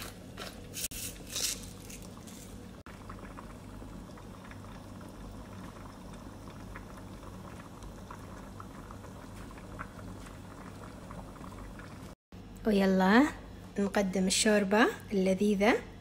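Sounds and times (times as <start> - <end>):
soup bubbling in a pot: 2.0 - 12.2.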